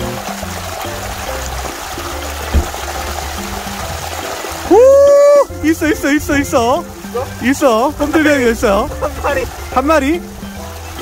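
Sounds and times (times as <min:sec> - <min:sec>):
background music with low bass: 0:00.0 - 0:11.0
stream water rushing: 0:00.0 - 0:11.0
short low thump: 0:02.4 - 0:03.7.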